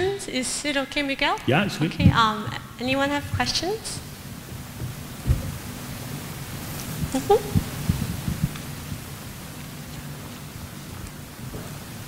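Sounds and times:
steady room hum: 0.0 - 12.0
murmured voice: 1.5 - 2.6
low thumps and knocks: 1.9 - 2.6, 4.4 - 5.7.

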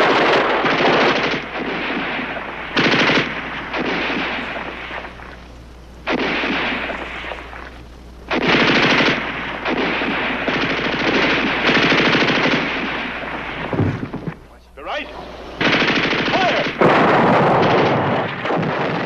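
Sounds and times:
machine gun firing bursts: 0.0 - 5.4, 6.0 - 7.7, 8.3 - 14.3, 15.6 - 19.0.

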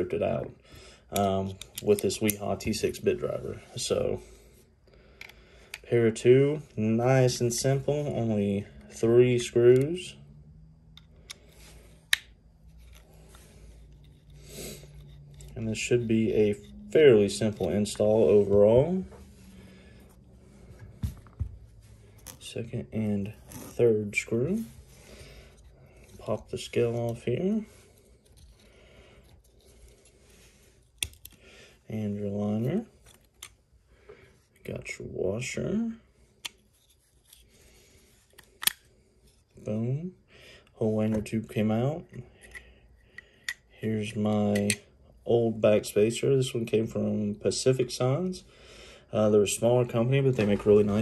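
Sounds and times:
handling small steel parts: 10.9 - 18.3, 25.2 - 31.4.

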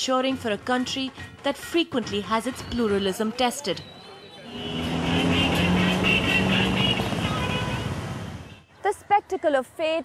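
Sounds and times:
motor vehicle engine running: 4.5 - 8.4.

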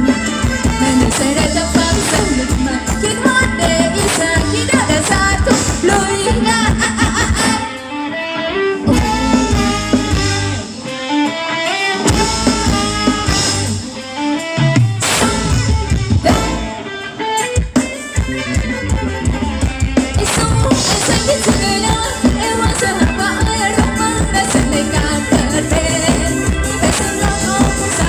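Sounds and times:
dance band music: 0.0 - 28.0.

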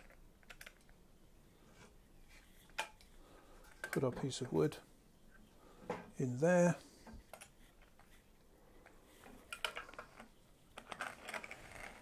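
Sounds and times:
string rustling: 7.0 - 12.0.

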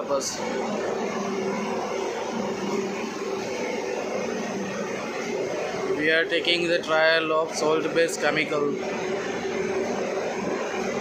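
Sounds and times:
blower mechanical whir: 0.0 - 11.0
low hum: 0.0 - 11.0.

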